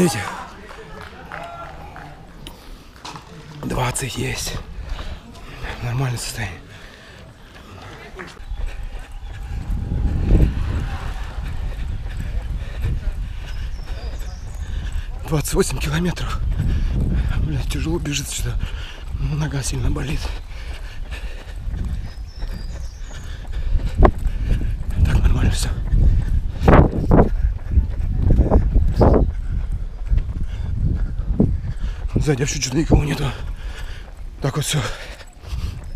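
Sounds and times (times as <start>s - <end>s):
running footsteps on asphalt: 0.0s - 35.9s
wind rumbling on microphone: 8.3s - 35.9s.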